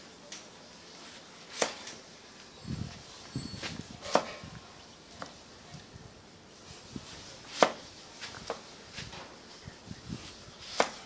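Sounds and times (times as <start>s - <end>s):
knife chopping on wooden block: 4.0s - 4.4s, 7.5s - 7.8s, 10.7s - 11.0s.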